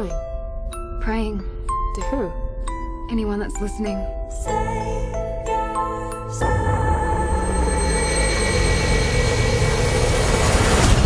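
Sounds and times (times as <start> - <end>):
cinematic hit: 6.4 - 11.0
low rumble: 6.4 - 11.0
engine-like roar: 6.6 - 11.0.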